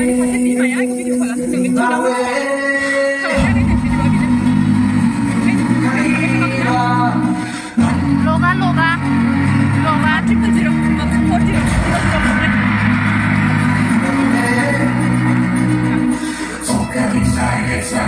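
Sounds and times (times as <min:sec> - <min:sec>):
loud music with singing: 0:00.0 - 0:18.0.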